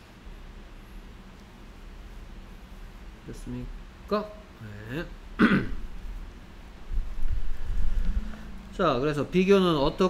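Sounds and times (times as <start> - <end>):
man clearing his throat: 5.4 - 5.9.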